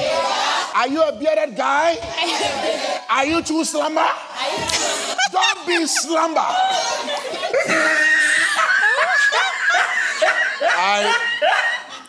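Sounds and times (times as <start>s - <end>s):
people laughing: 2.1s - 3.0s, 3.6s - 12.0s.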